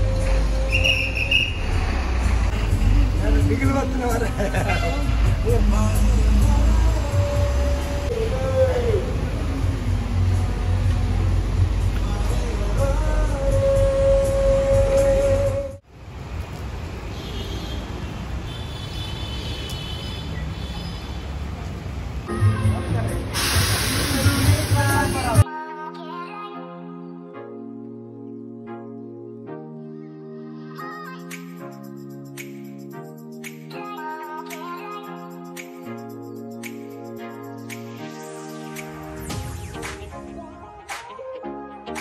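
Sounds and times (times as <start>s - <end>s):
bus engine rumbling: 0.0s - 18.5s, 20.3s - 25.4s
people's voices: 22.2s - 25.4s.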